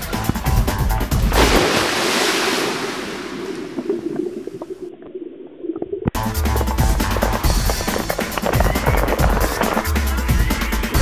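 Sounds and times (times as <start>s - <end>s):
background music with beat: 0.0s - 1.4s, 6.2s - 11.0s
water splashing into pool: 1.1s - 6.3s.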